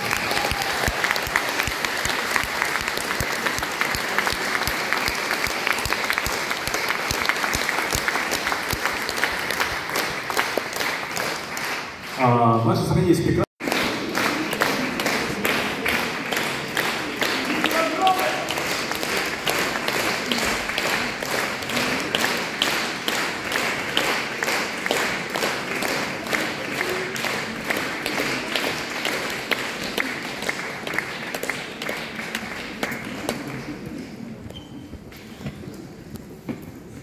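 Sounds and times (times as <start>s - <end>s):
audience clapping in unison: 0.0s - 34.5s.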